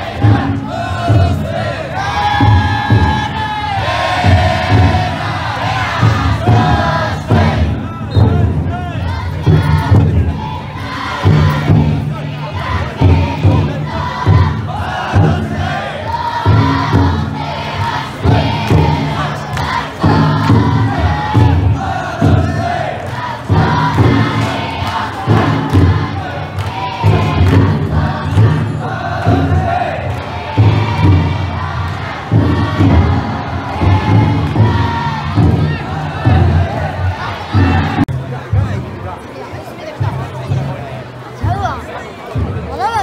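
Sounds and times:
large drum beating: 0.0s - 39.1s
group chanting and shouting: 0.0s - 43.0s.

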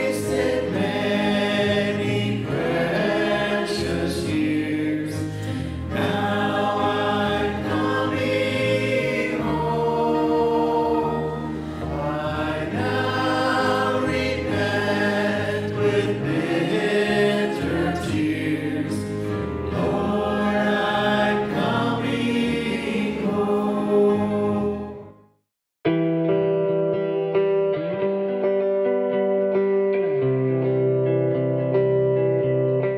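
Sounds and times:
group singing a hymn: 0.0s - 25.1s.

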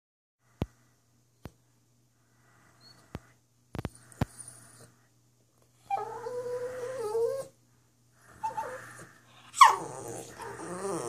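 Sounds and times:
dog whining: 5.8s - 7.6s, 8.3s - 11.0s.

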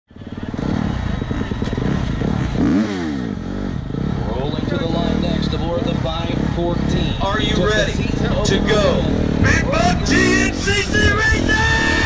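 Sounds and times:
dirt bike engines revving: 0.1s - 12.0s.

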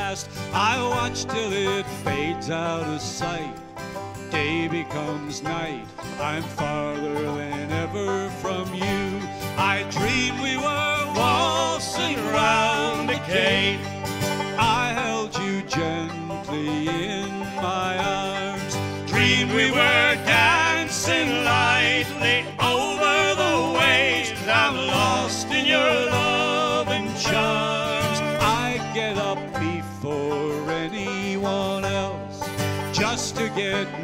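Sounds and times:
acoustic guitar: 0.0s - 34.0s
banjo playing: 0.0s - 34.0s.

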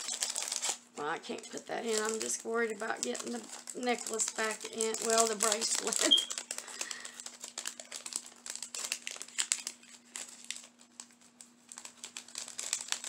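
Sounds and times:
jewelry packaging crinkling: 0.0s - 13.0s.

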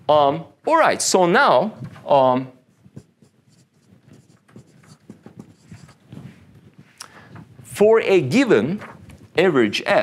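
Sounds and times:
marker writing on whiteboard: 2.7s - 6.3s.

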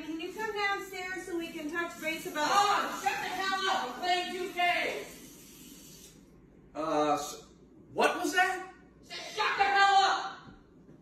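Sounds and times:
room hiss: 0.0s - 9.9s.

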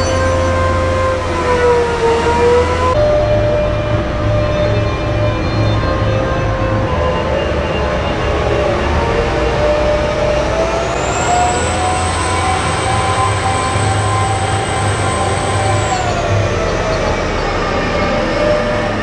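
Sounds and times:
haul truck engines running: 0.0s - 19.0s
high whine: 0.0s - 19.0s.

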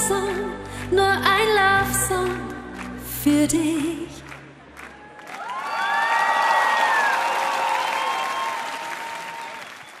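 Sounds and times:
audience applauding: 4.3s - 10.0s
voices cheering: 4.8s - 10.0s.

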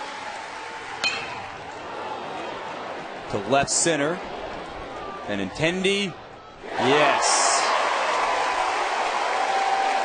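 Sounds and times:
crowd noise: 0.0s - 10.0s
metal bat hitting ball: 1.0s - 1.7s.

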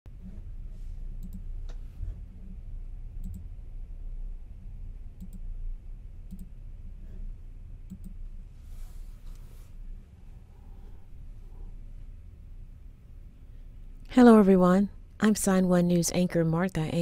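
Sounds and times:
low steady hum: 0.1s - 17.0s.

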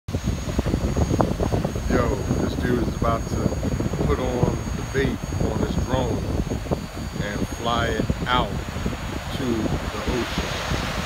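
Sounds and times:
drone propeller hum: 0.1s - 11.0s
wind buffeting microphone: 0.1s - 11.0s
waves breaking: 5.4s - 11.0s.

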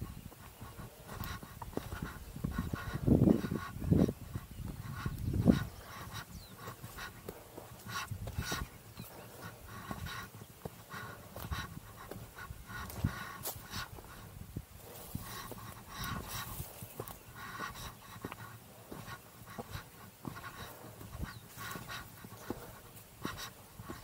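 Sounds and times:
person breathing hard: 0.0s - 24.0s.

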